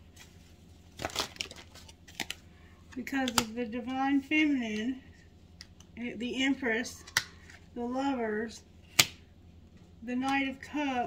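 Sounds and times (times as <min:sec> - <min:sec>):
cards rustling: 0:00.1 - 0:03.6.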